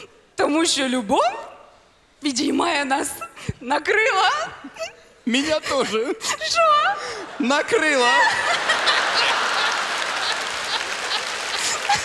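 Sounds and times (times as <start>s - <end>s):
studio audience applauding: 8.1s - 12.0s.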